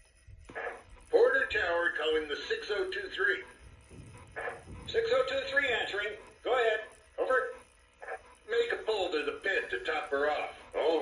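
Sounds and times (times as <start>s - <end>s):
man's voice over radio: 0.5s - 3.5s, 4.6s - 7.6s, 8.5s - 11.0s.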